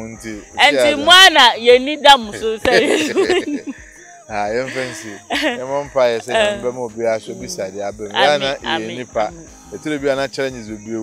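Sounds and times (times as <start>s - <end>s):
crickets chirping: 0.0s - 11.0s
people talking: 0.0s - 11.0s.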